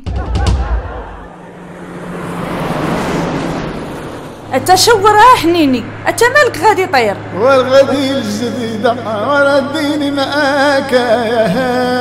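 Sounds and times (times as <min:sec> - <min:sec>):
car engine hum with rushing noise: 0:00.0 - 0:12.0.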